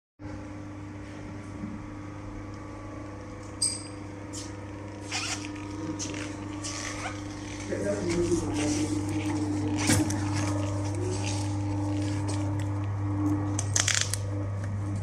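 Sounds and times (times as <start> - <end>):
low electrical hum: 0.2 - 15.0.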